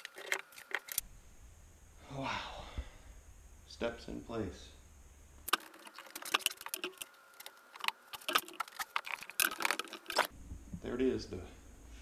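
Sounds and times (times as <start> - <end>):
metal and wood clicks and rattles: 0.0 - 1.0, 5.5 - 10.3.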